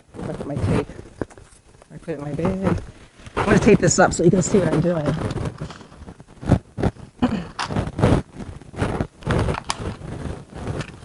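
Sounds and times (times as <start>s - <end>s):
rustles and scrapes of handling: 0.0s - 11.0s.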